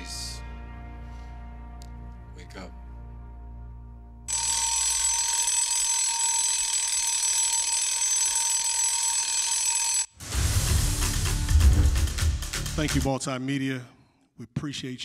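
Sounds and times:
soft film music: 0.0s - 4.3s
alarm clock bell ringing: 4.3s - 10.1s.

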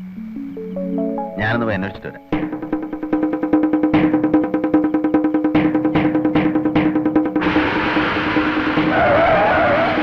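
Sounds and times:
dense rushing noise: 7.4s - 10.0s.

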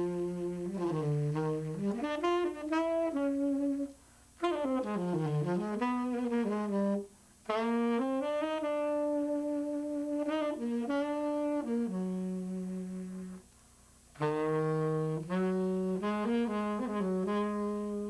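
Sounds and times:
tenor saxophone playing: 0.0s - 18.0s.

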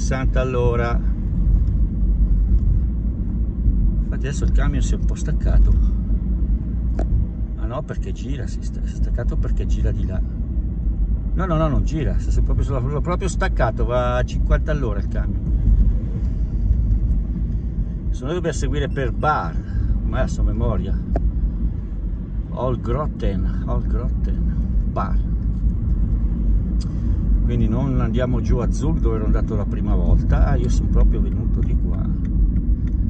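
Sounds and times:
vehicle engine and road rumble: 0.0s - 33.0s.

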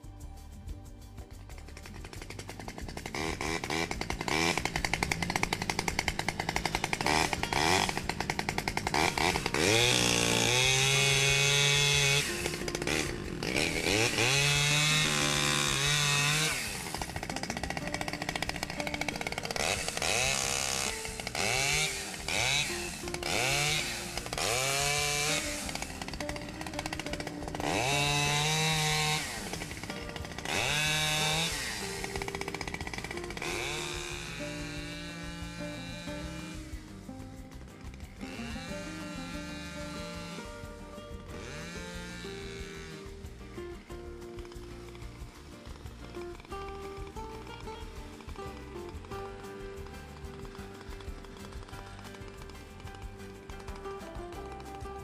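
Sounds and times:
chainsaw idling and revving: 1.2s - 55.0s.

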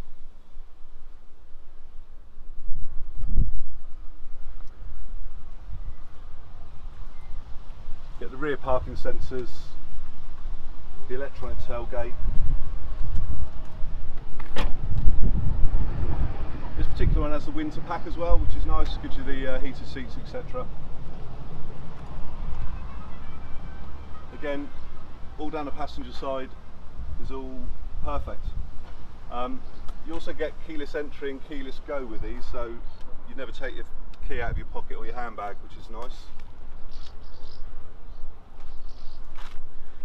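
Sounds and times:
wind and handling rumble: 0.0s - 40.0s
dull thump: 14.4s - 15.2s.

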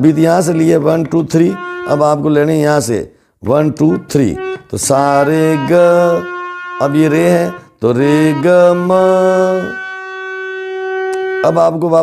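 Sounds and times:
harmonium reed note: 0.6s - 12.0s
man singing a held note: 1.0s - 12.0s.

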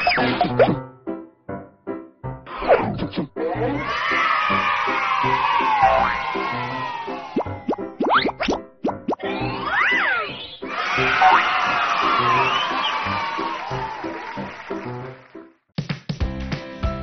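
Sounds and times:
rising whistle-like cartoon effects: 3.5s - 13.9s
cheering: 3.6s - 7.8s, 9.5s - 15.4s.

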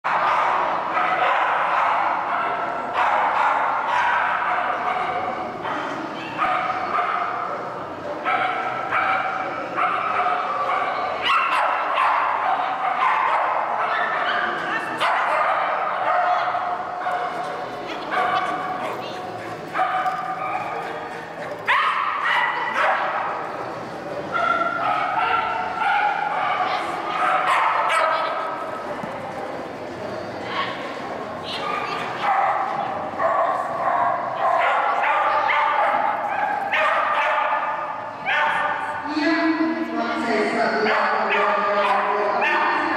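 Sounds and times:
dog barking: 0.1s - 7.5s, 8.2s - 17.4s, 19.8s - 20.8s, 21.6s - 23.2s, 24.4s - 28.5s, 31.6s - 38.8s, 40.8s - 42.9s.

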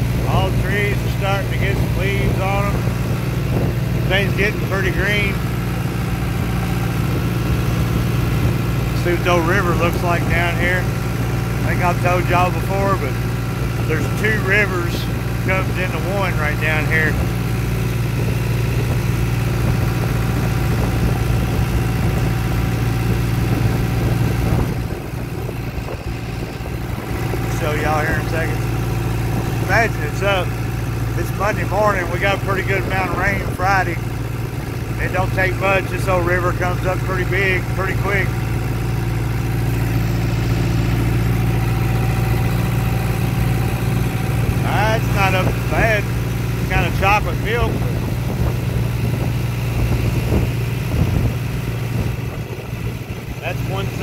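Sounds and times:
tractor engine running: 0.0s - 54.0s.

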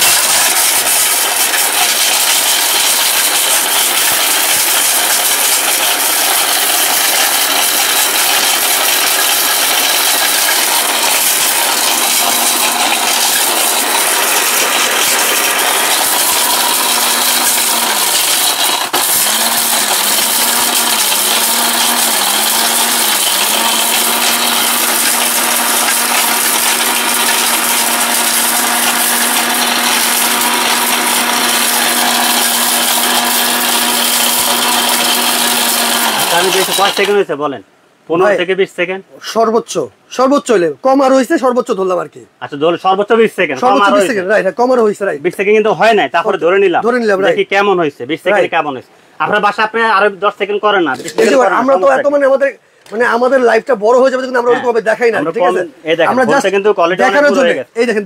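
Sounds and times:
hard pieces rattling in metal jar: 0.0s - 37.1s
mixer grinder motor running: 0.0s - 37.2s.

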